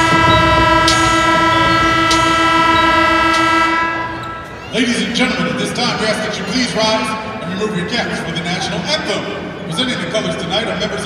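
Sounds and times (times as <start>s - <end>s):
arena game horn blast: 0.0s - 5.1s.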